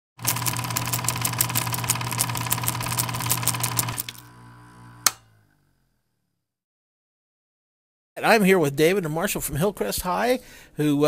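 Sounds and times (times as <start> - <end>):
rapid mechanical clicking: 0.2 - 4.1.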